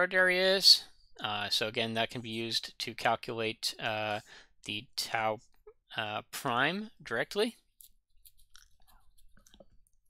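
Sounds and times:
mouth and lip clicks: 0:07.8 - 0:10.0.

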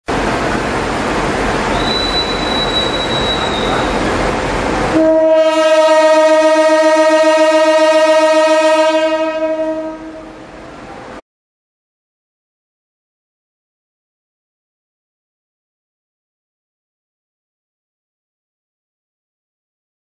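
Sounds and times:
diesel locomotive rumbling: 0:00.0 - 0:11.2
locomotive horn blast: 0:01.7 - 0:04.0, 0:04.9 - 0:10.5.

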